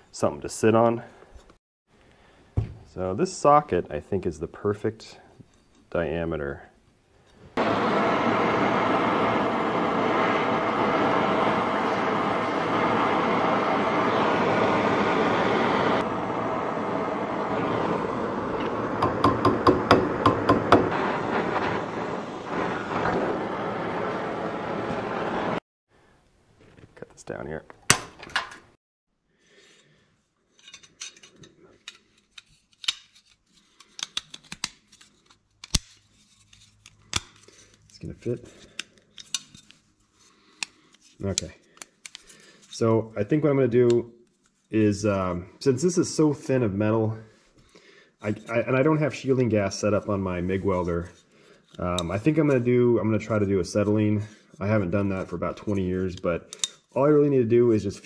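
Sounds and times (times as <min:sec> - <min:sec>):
torch flame hissing: 0:07.6 - 0:25.6.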